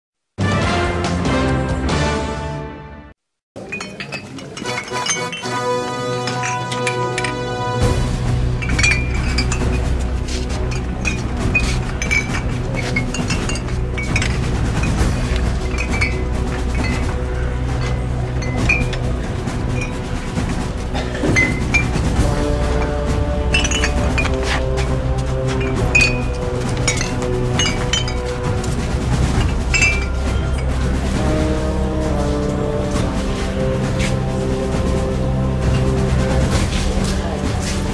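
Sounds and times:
glass bottles clinking: 3.6 - 33.3
music with deep bass drone: 5.9 - 37.9.

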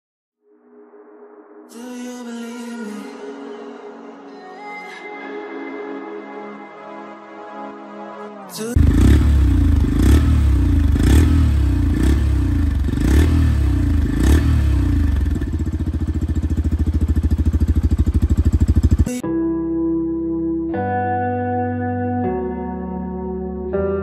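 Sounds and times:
motorcycle engine revving and idling: 8.8 - 19.2.

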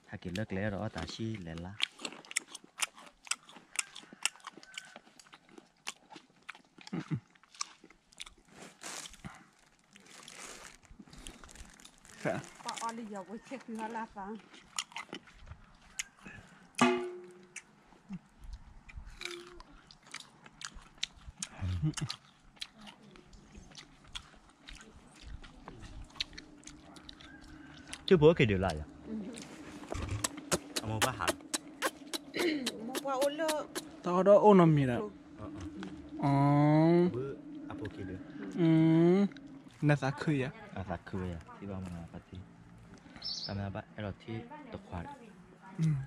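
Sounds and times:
person chewing crunchy snack: 0.3 - 13.0, 13.7 - 34.0
person speaking: 28.2 - 42.4.

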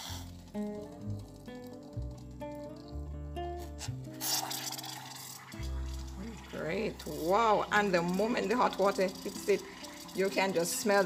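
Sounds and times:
water pouring into teapot: 0.0 - 2.7, 3.8 - 11.0
background music with bass: 0.0 - 4.8.

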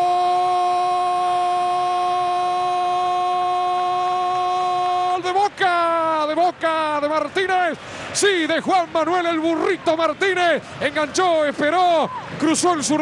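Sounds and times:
commentator shouting goal call: 0.0 - 13.0
commentator speaking rapidly: 5.2 - 13.0.

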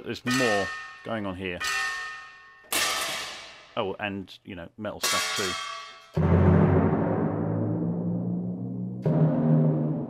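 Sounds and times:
deep ringing percussion hit: 6.2 - 10.0.

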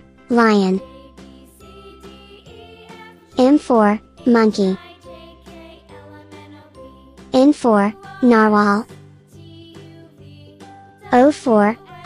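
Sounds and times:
children's music: 0.0 - 12.0.

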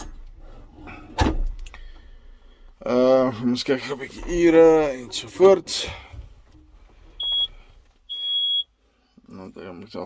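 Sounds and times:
short electronic beep: 7.2 - 8.7.

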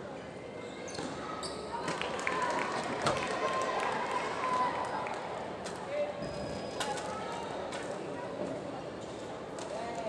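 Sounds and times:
shoes squeaking on court floor: 0.6 - 1.9.

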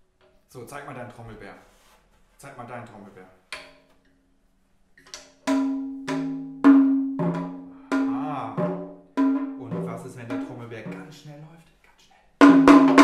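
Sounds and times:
frame drums struck by hand: 5.1 - 11.3, 12.4 - 13.0.

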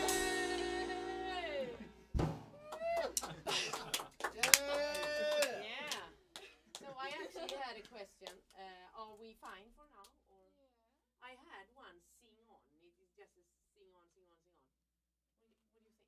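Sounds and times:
jazz band chord: 0.0 - 1.6
sharp knock: 2.2 - 2.6.

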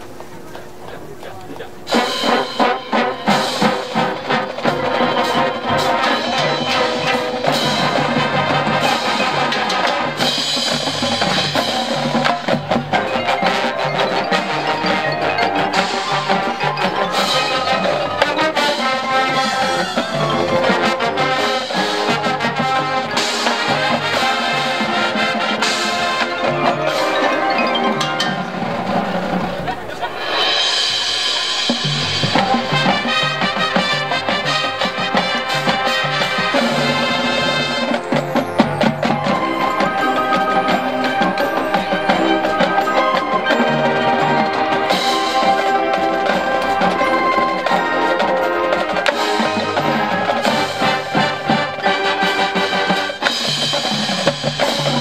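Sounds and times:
marching band playing: 0.0 - 55.0
marimbas and xylophones: 0.0 - 55.0.

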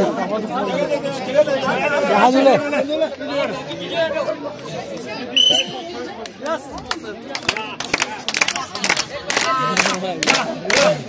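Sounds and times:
crowd talking and calling out: 0.0 - 11.0.

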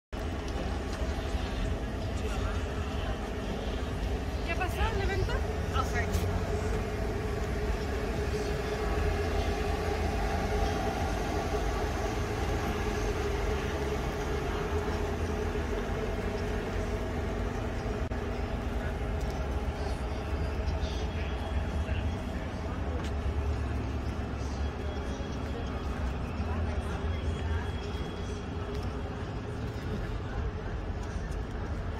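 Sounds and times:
low city rumble: 0.1 - 31.9.

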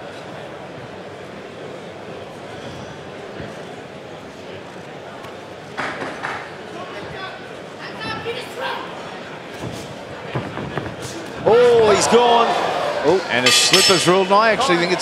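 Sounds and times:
crowd murmur: 0.0 - 15.0
crowd shouting: 11.4 - 15.0.

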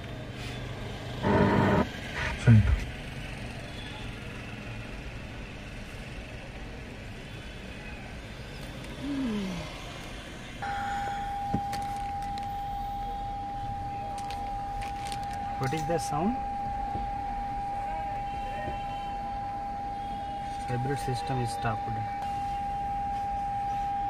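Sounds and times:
dashboard warning tone: 1.2 - 2.8, 10.6 - 24.0.

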